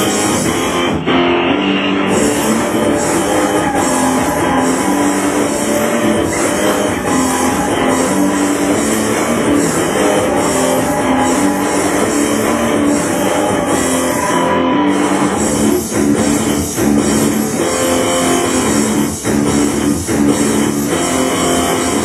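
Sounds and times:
industrial rock instrumental: 0.0s - 22.0s.

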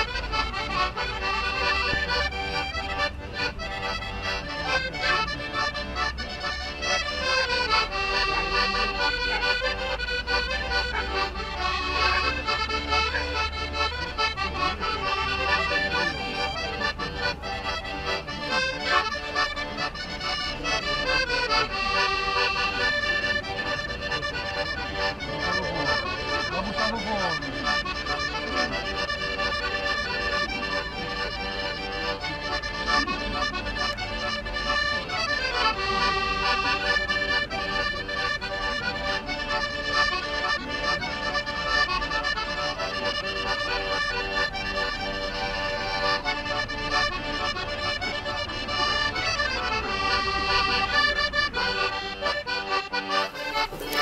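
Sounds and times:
accordion chords: 0.0s - 54.0s.

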